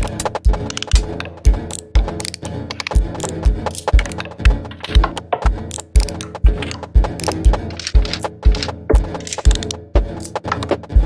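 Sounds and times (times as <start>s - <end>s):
clicking rattly percussion: 0.0s - 10.9s
deep kick drum: 6.4s - 9.2s.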